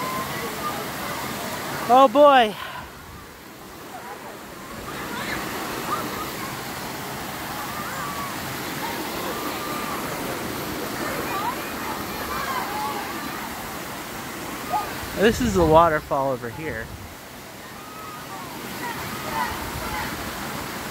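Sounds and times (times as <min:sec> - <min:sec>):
water rushing over rock: 0:00.0 - 0:20.9.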